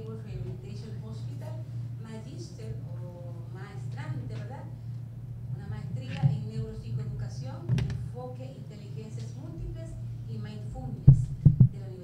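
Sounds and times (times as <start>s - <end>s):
thumps on handheld microphone: 11.1s - 11.8s.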